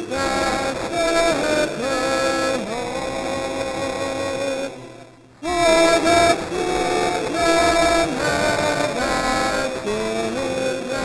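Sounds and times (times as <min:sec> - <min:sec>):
congregation singing: 0:00.0 - 0:11.0.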